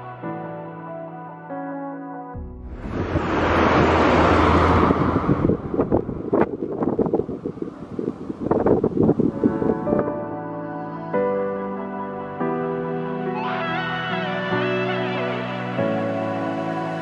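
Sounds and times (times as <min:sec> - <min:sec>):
wind buffeting microphone: 0:02.4 - 0:10.3
highway road noise: 0:02.6 - 0:09.3.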